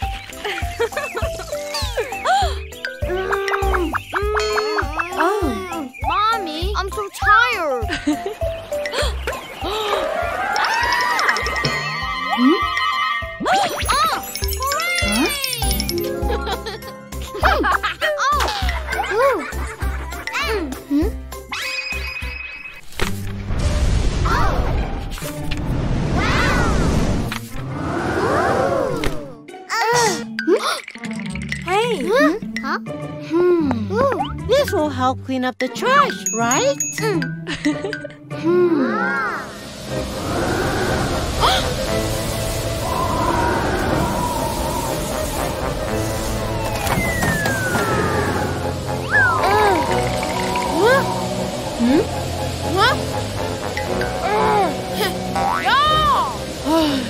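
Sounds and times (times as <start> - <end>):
rising and falling wail: 9.7 - 13.4, 38.7 - 52.6
rushing wind roar: 39.7 - 52.6
deep rumbling with crashing: 39.7 - 53.6
long falling whistle: 42.8 - 48.5.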